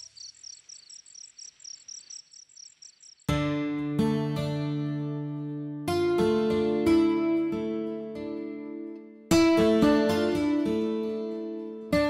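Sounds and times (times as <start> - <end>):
crickets chirping: 0.0 - 3.3.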